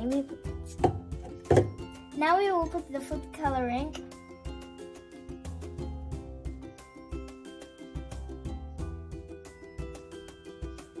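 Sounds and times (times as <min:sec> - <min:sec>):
background music with held tones: 0:00.0 - 0:11.0
sharp knocks: 0:00.8 - 0:01.8.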